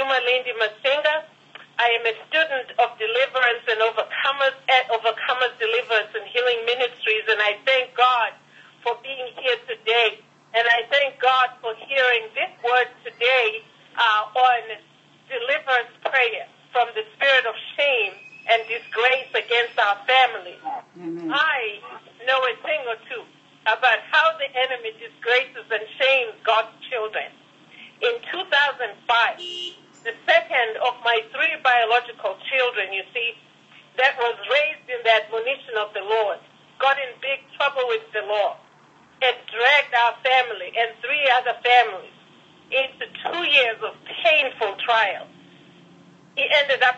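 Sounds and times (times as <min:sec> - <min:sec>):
person speaking over telephone: 0:00.0 - 0:27.3, 0:28.0 - 0:29.4, 0:30.1 - 0:33.3, 0:34.0 - 0:38.6, 0:39.2 - 0:42.1, 0:42.7 - 0:45.2, 0:46.4 - 0:46.9.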